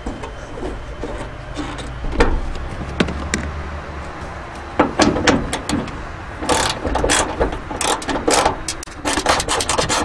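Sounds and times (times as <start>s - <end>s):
ratchet wrench clicking: 6.4s - 10.0s.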